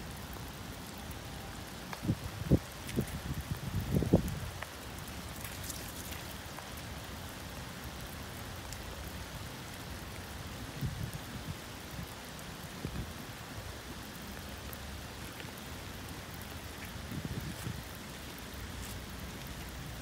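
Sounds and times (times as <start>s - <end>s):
light rain on puddles and gravel: 0.0s - 20.0s.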